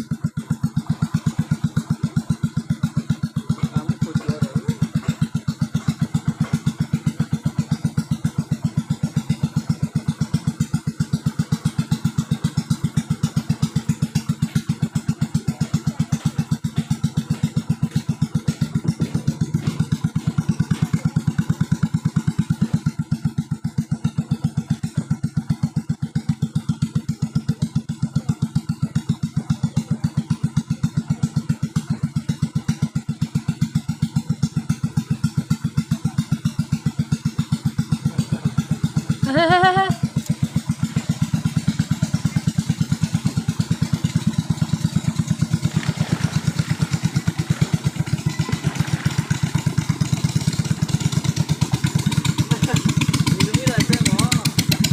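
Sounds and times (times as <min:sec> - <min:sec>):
small boat engine chugging: 0:00.0 - 0:54.9.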